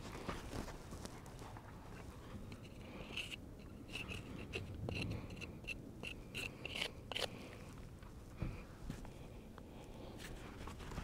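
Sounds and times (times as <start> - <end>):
hoof pick scraping hoof: 2.0 - 7.5.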